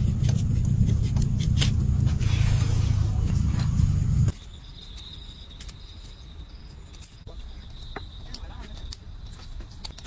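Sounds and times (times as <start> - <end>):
loud low rumble: 0.0 - 4.3
high-pitched insect trill: 4.3 - 10.0.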